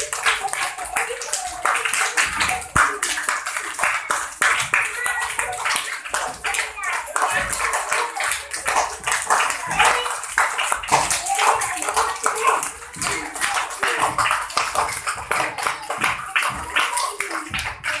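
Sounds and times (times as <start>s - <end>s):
children's voices: 0.0s - 18.0s
hands clapping: 0.0s - 18.0s.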